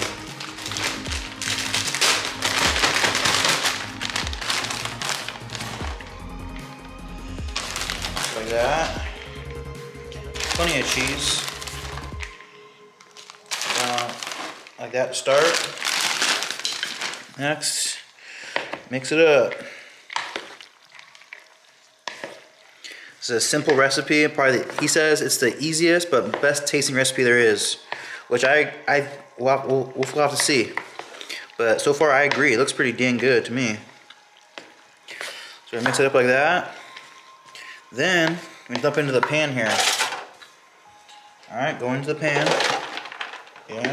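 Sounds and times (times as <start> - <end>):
plastic bag crinkling: 0.0 - 6.2, 7.4 - 9.6, 10.2 - 17.8, 19.2 - 26.0, 30.0 - 40.6, 42.2 - 43.9
background music with steady beat: 0.0 - 16.0, 22.0 - 43.9
wooden spoon stirring macaroni: 19.4 - 25.3.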